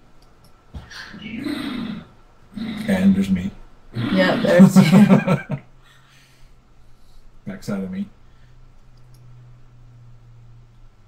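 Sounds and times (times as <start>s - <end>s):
drawn-out vocal sound: 0.8s - 4.8s
person speaking: 4.0s - 5.2s.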